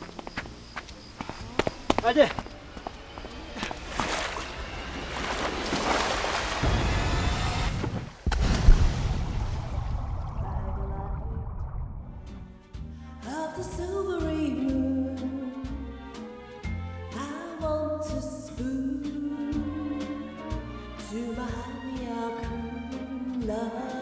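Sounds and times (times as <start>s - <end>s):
heavy splash into water: 5.1s - 12.2s
underwater rush of bubbles: 8.2s - 12.6s.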